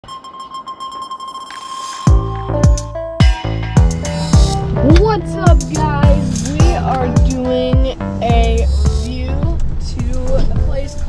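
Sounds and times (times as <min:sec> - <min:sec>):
fast-pulsing synthetic beep: 0:03.8 - 0:05.0
rising hiss: 0:04.0 - 0:04.7.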